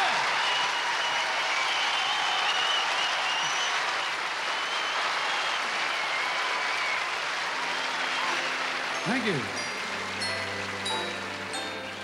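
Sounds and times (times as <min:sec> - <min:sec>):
grand piano playing slowly: 0:07.7 - 0:12.0.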